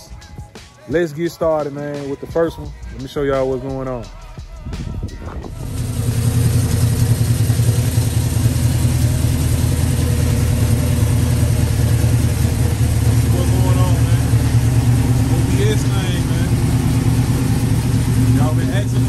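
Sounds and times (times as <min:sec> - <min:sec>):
pickup truck engine idling: 0:05.1 - 0:19.0.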